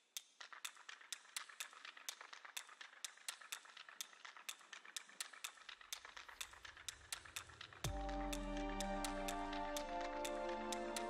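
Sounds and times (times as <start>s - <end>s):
music with falling swoop: 7.9s - 11.0s.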